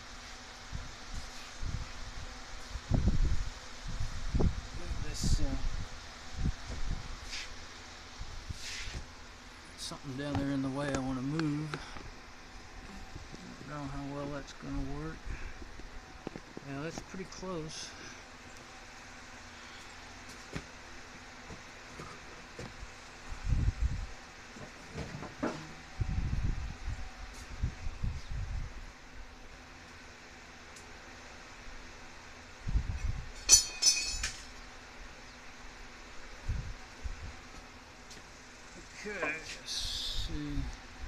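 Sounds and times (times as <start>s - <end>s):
bright metallic clink: 33.4s - 34.5s.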